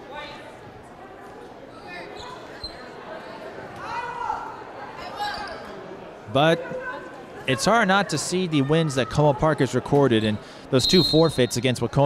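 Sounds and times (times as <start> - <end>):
echoing voices and chatter: 0.0 - 12.0.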